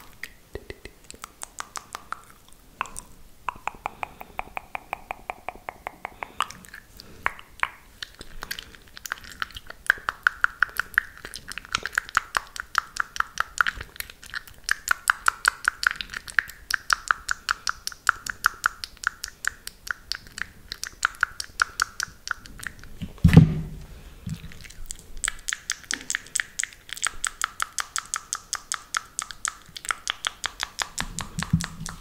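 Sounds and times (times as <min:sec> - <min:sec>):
wet mouth clicks and pops: 0:00.0 - 0:23.2, 0:24.3 - 0:32.0.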